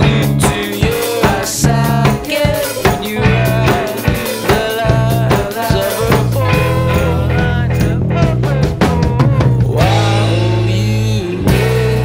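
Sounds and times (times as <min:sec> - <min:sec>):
drum kit beat: 0:00.0 - 0:12.0
upbeat indie rock song: 0:00.0 - 0:12.0.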